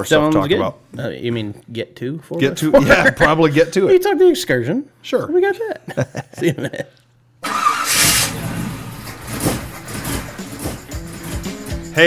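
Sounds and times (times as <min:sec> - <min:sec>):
old vehicle engine starting and running: 0:07.4 - 0:12.0
music playing: 0:08.8 - 0:12.0.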